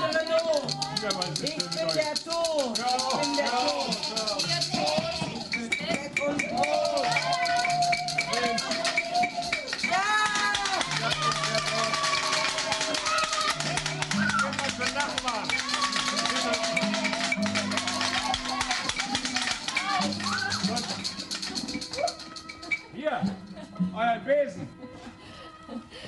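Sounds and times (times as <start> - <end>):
fast rattling and shaking: 0.0 - 22.8
voices shouting and chanting: 0.0 - 23.1.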